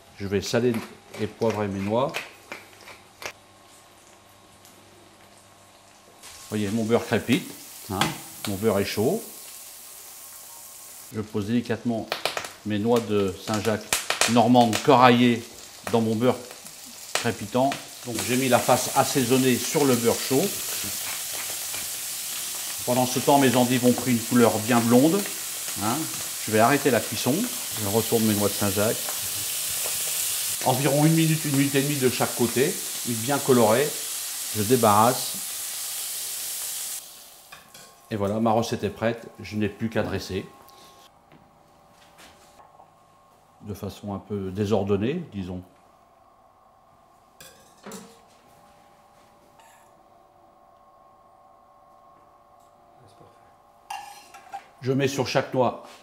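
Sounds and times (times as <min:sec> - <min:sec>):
scallops sizzling in butter: 0:05.2 - 0:11.1, 0:13.4 - 0:38.0
faint steady hum: 0:37.0 - 0:55.8
utensils clinking on plate: 0:53.9 - 0:54.7.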